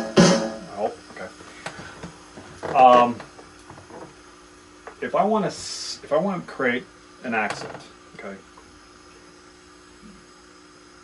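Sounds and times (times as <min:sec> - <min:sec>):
electrical mains hum: 0:00.0 - 0:11.0
faint hiss: 0:04.2 - 0:11.0.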